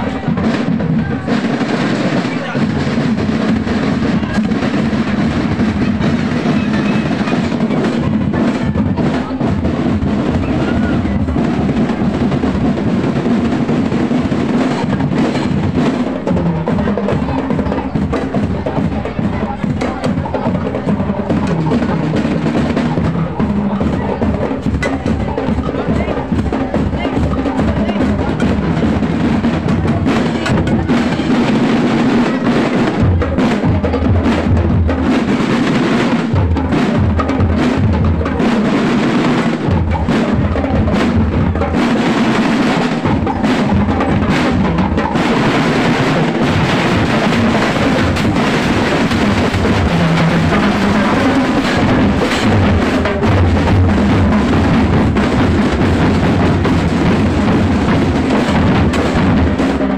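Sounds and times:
snare drums: 0.0s - 59.9s.

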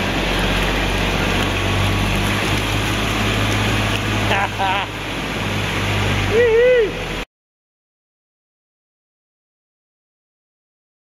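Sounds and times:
diesel engine running low: 0.0s - 7.2s.

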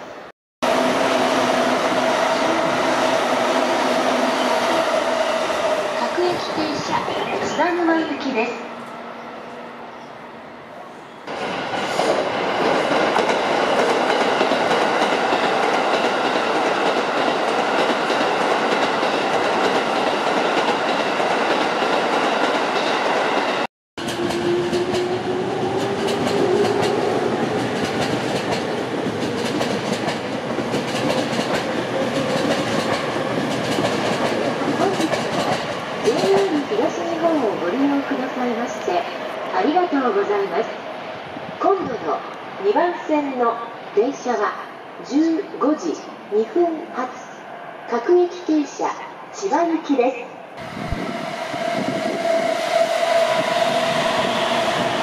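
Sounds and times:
train passing with wheel-on-rail noise: 0.0s - 55.0s.

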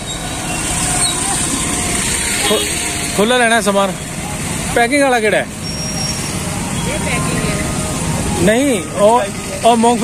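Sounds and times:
motorcycle and rickshaw engines: 0.0s - 10.0s.

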